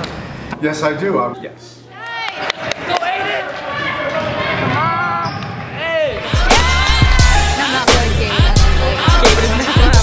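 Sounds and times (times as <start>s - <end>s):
hip-hop music with bass kicks: 6.2s - 10.0s.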